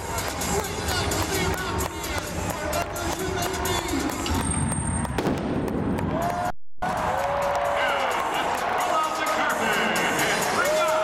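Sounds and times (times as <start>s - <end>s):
pyrotechnics popping and crackling: 5.0s - 6.1s.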